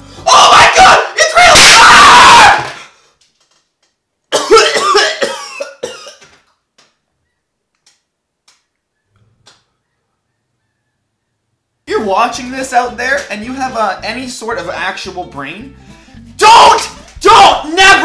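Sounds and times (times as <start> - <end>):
man coughing: 4.3 - 6.3.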